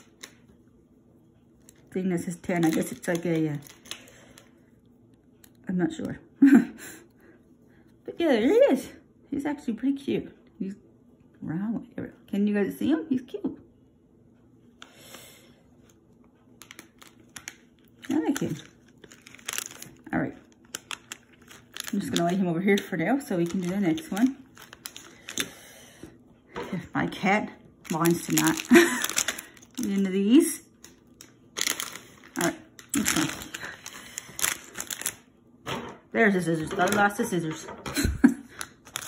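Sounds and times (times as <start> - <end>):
foil packets crinkling: 1.6 - 4.5, 16.6 - 25.6, 27.8 - 35.3, 36.6 - 37.3, 38.2 - 39.0.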